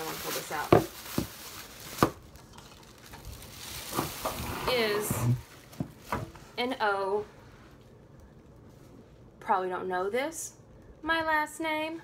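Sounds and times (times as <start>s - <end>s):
plastic bag rustling: 0.0s - 6.6s.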